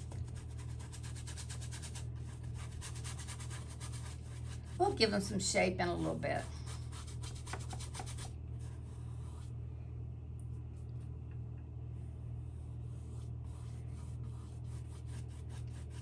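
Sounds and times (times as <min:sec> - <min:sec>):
paintbrush scrubbing on canvas: 0:00.0 - 0:05.1, 0:12.1 - 0:16.0
steady low hum: 0:00.0 - 0:16.0.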